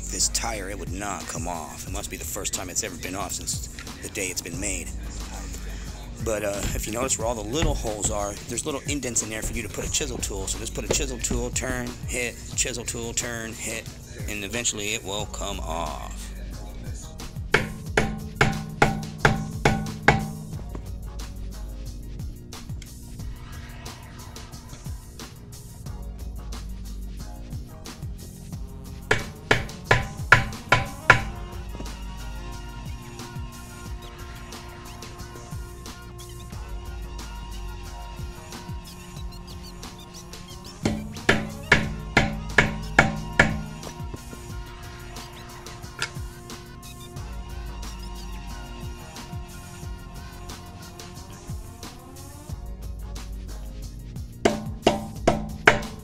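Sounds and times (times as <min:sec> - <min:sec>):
background music: 0:00.0 - 0:56.0
hammer striking a chisel: 0:17.6 - 0:20.6, 0:29.1 - 0:31.4, 0:40.8 - 0:44.0, 0:54.5 - 0:56.0.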